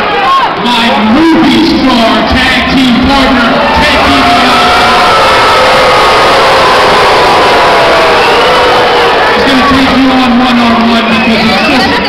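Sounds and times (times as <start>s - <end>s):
crowd cheering and yelling: 0.0s - 12.0s.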